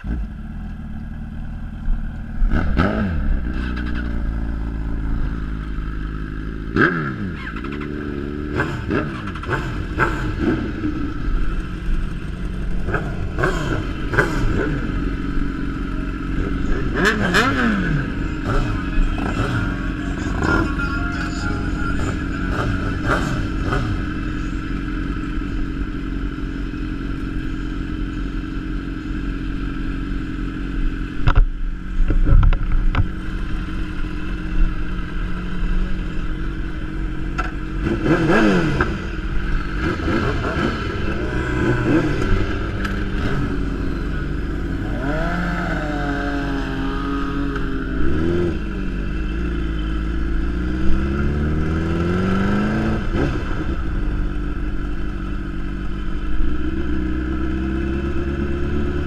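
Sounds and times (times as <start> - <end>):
motorcycle engines revving: 0.0 - 59.0.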